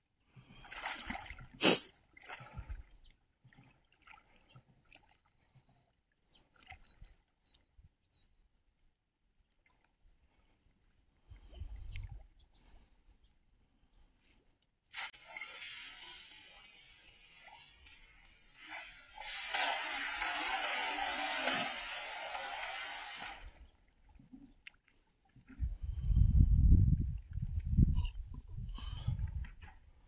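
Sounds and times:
cast net splashing into water: 14.9 - 23.6.

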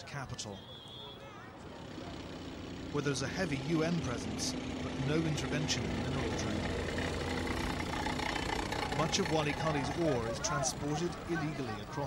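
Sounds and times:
vehicle engine humming: 0.6 - 12.0.

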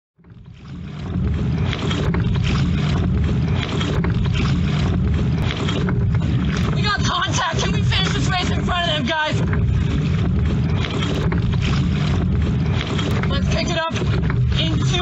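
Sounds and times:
water and wind rumble: 0.2 - 15.0.

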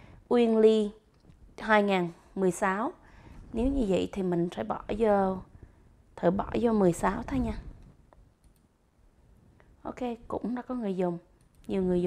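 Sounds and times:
keyboard and mouse clicks: 7.8 - 8.7, 11.4 - 11.8.

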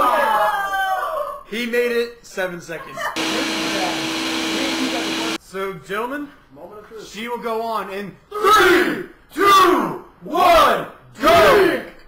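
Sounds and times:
blender running: 3.2 - 5.4
steady hum: 3.2 - 5.4.

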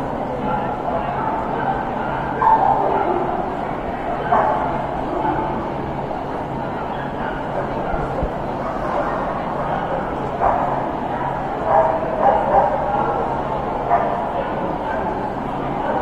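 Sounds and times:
crowd chatter in a hall: 0.0 - 16.0.

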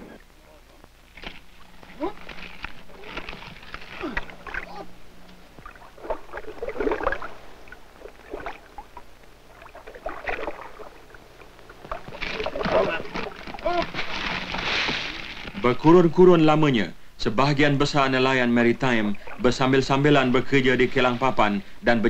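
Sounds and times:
faint steady hum: 0.0 - 22.0
water sloshing and splashing: 1.2 - 4.9, 5.6 - 15.6, 19.0 - 19.6.

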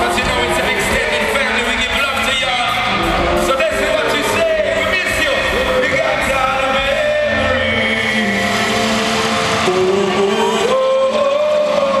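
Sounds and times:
live band playing: 0.0 - 12.0
singer holding sliding notes: 2.7 - 12.0.

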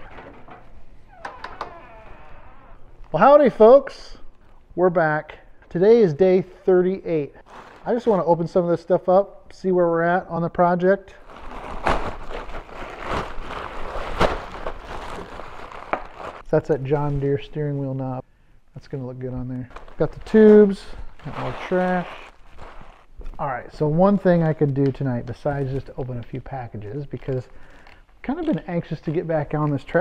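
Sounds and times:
door opening: 0.0 - 3.1
plastic bag tearing: 7.4 - 8.1, 11.2 - 16.4, 21.2 - 23.1
paper crinkling and rustling: 11.2 - 16.4, 19.7 - 23.4.

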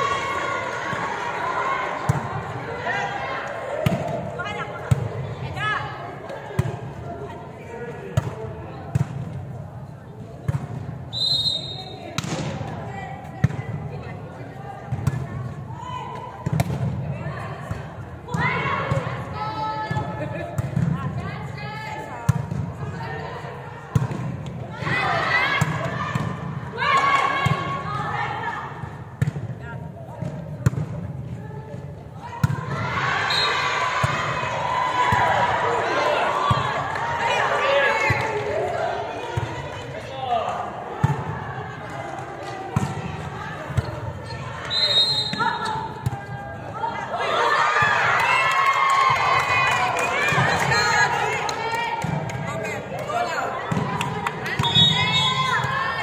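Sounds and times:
players shouting: 0.0 - 8.3, 24.6 - 28.8, 32.2 - 56.0.

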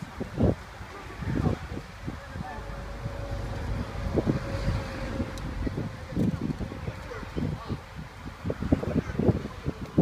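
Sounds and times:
road vehicles rumbling: 0.0 - 10.0
wind buffeting microphone: 0.0 - 10.0.

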